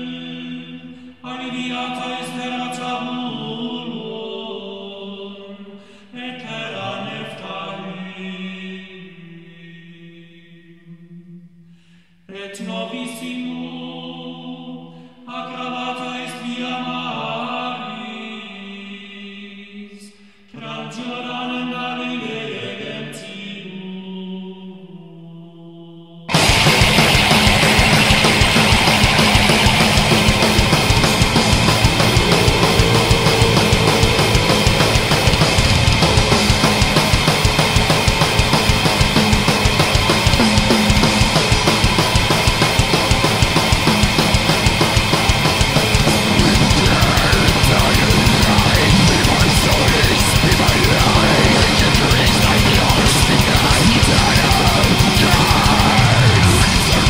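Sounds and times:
choral chant singing: 0.0 - 11.4, 12.3 - 57.0
low chanted vocal note: 27.3 - 39.4, 45.9 - 57.0.

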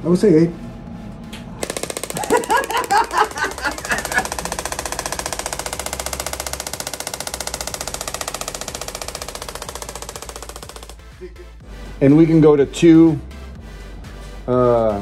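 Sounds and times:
sharp clicking pulses: 1.6 - 11.0.

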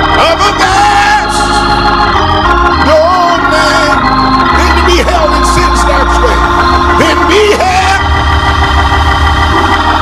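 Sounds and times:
deep bass: 0.0 - 10.0
organ sustained chords: 0.0 - 10.0.

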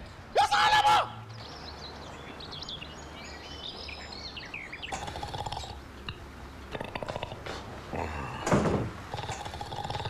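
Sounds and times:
small birds chirping: 1.1 - 8.4.

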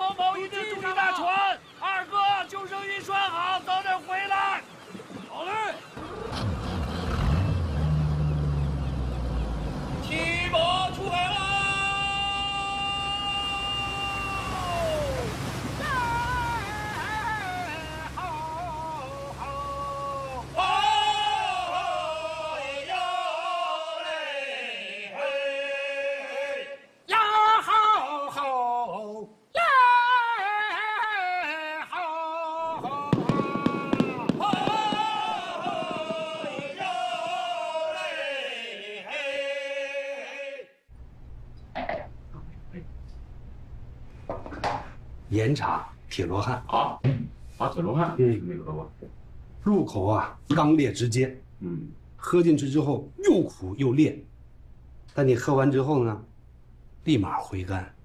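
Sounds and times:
boat engine revving: 6.0 - 23.0
person singing a long note: 10.1 - 15.2
firecrackers cracking: 32.8 - 37.6.

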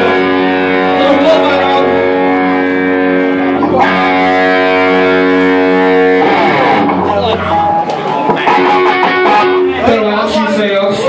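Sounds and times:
loud electric guitar: 0.0 - 11.0.

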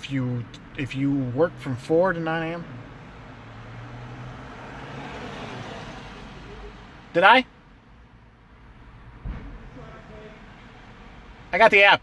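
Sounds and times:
low steady traffic hum: 0.0 - 12.0
vehicle passing by: 1.4 - 7.1.

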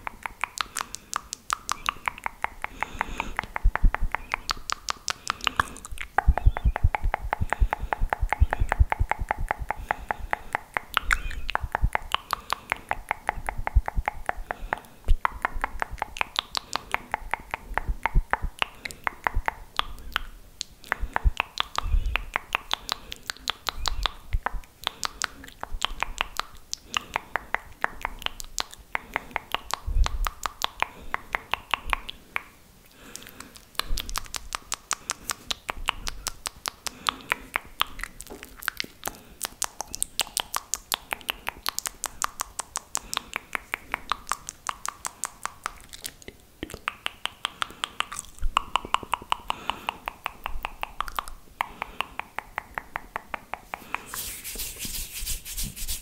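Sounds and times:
tongue clicks and lip smacks: 0.0 - 56.0.

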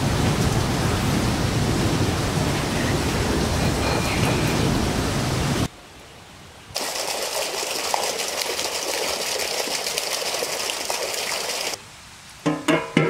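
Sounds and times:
steady outdoor hiss: 0.0 - 13.0.

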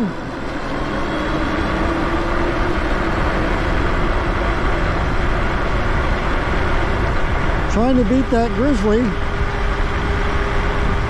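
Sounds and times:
electric motor whine: 0.0 - 11.0
wind rushing over microphone: 0.0 - 11.0.

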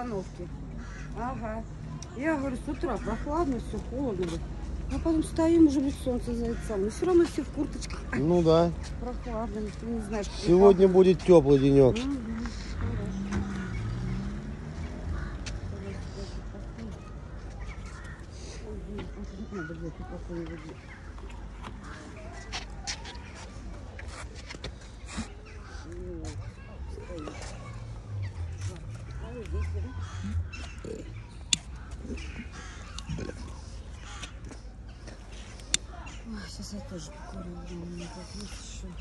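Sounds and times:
faint voices: 0.0 - 39.0
outdoor background noise: 0.0 - 39.0
indistinct voices: 24.9 - 39.0
bird calling: 26.9 - 34.8.

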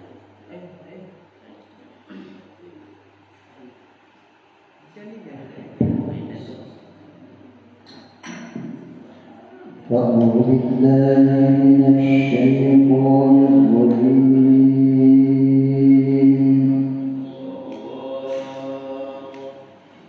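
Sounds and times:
man chanting into a microphone: 9.8 - 19.9.

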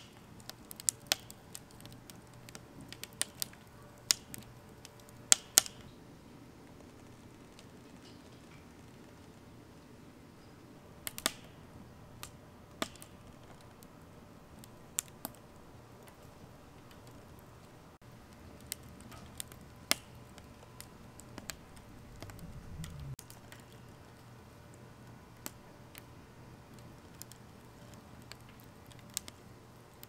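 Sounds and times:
wood fire crackling and popping: 0.0 - 30.0.

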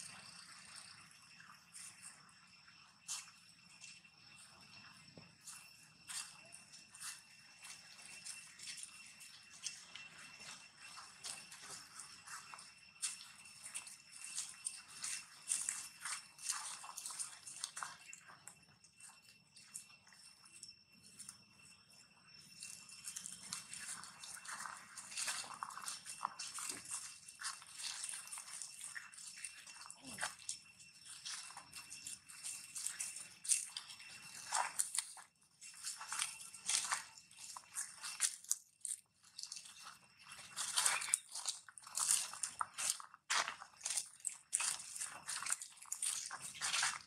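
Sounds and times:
dry leaves crackling underfoot: 5.4 - 18.2, 22.5 - 47.0.

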